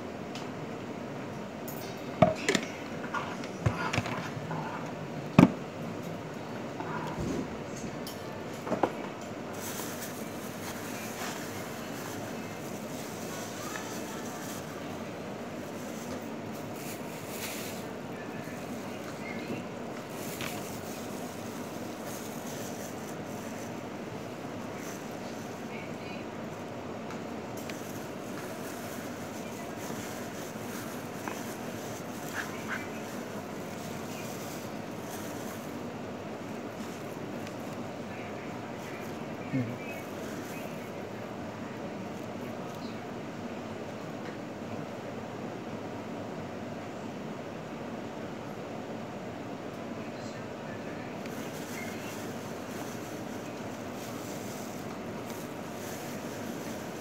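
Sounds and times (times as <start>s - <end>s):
faint indistinct murmur: 0.0s - 57.0s
plastic glove crinkling: 9.5s - 41.4s, 51.2s - 57.0s.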